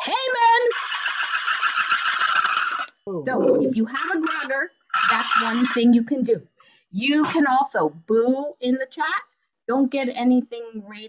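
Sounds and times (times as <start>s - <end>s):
wooden ratchet noisemaker rattling: 0.0s - 6.1s.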